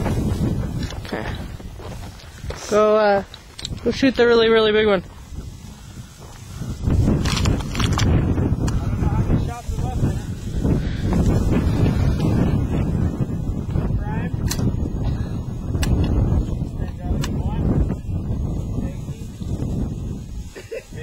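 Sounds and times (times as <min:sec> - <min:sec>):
wind buffeting microphone: 0:00.0 - 0:21.0.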